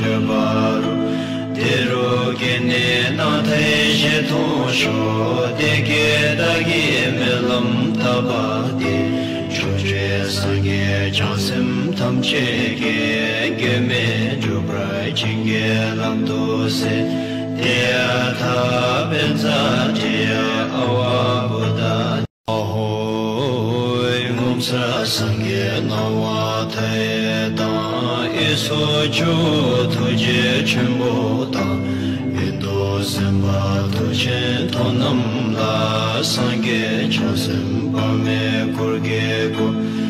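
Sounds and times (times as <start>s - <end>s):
instrumental music: 0.0s - 22.3s, 23.2s - 40.0s
chant with steady drone: 0.0s - 40.0s.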